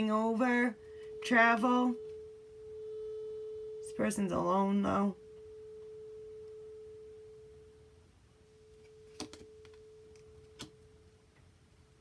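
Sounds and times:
steady pure tone: 0:00.0 - 0:12.0.

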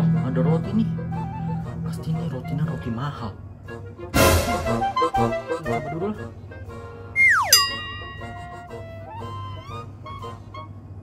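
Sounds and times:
light comic background music: 0:00.0 - 0:11.0
cartoon falling glide: 0:07.2 - 0:08.5
bright ringing tone: 0:07.2 - 0:08.8.

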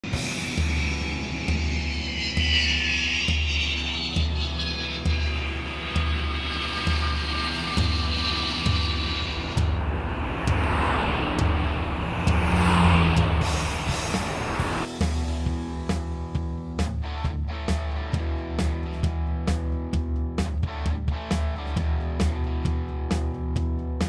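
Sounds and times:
rock music with pulsing bass: 0:00.0 - 0:24.0
jet airliner passing overhead: 0:03.8 - 0:14.9.

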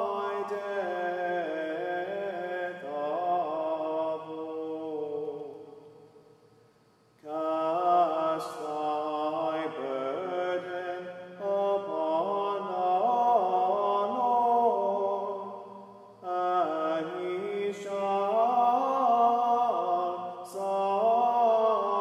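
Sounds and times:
man singing unaccompanied chant: 0:00.0 - 0:05.9, 0:07.2 - 0:22.0.

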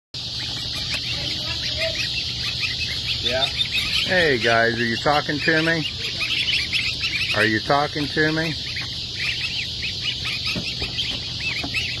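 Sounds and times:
goslings peeping: 0:00.2 - 0:12.0.

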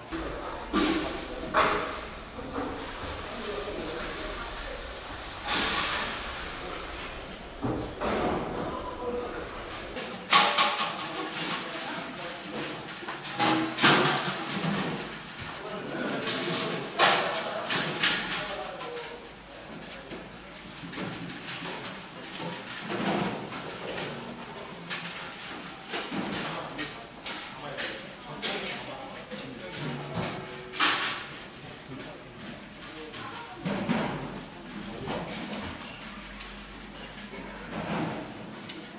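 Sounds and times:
background chatter: 0:00.0 - 0:38.9.

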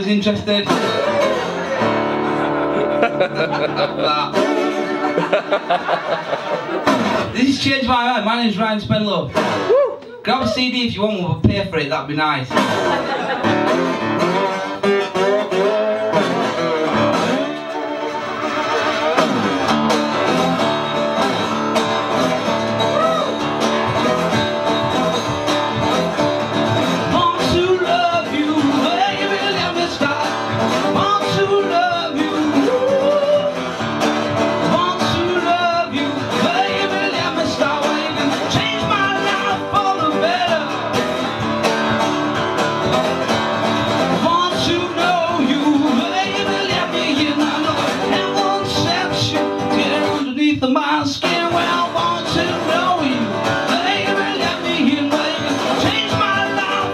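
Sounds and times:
man singing: 0:00.0 - 0:02.0, 0:07.3 - 0:09.3, 0:26.9 - 0:33.7, 0:34.6 - 0:41.0, 0:44.0 - 0:56.9
strummed acoustic guitar: 0:00.0 - 0:09.7, 0:10.3 - 0:56.9.

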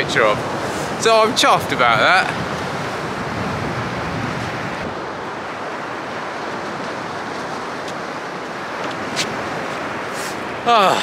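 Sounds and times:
waves washing on beach: 0:00.0 - 0:11.0.

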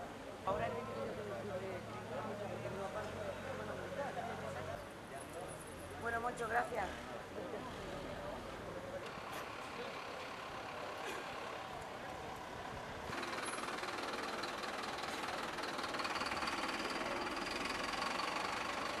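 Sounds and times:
vehicle engine idling: 0:08.0 - 0:19.0.

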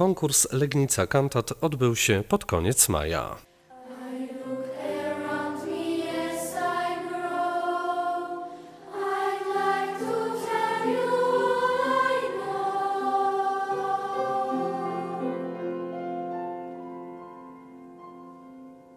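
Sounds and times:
choir singing sustained chords: 0:03.5 - 0:18.1.

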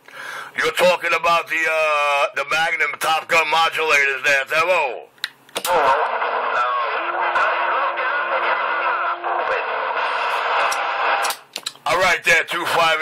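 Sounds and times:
warbling radio transmission: 0:05.7 - 0:11.2
steady low radio tone: 0:05.7 - 0:11.3.

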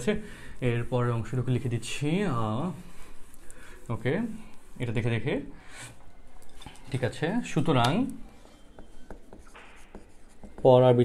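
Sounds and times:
marker scratching on whiteboard: 0:00.0 - 0:05.2, 0:08.3 - 0:11.0
man talking: 0:10.6 - 0:11.0.

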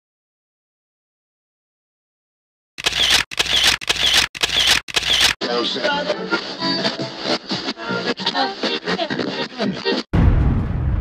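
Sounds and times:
camera shutter firing: 0:02.8 - 0:05.4.

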